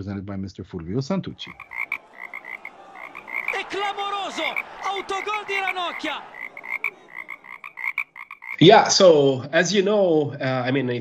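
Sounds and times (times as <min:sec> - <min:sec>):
frogs chirping: 0:01.4 - 0:08.6
frogs croaking loudly: 0:01.4 - 0:08.6.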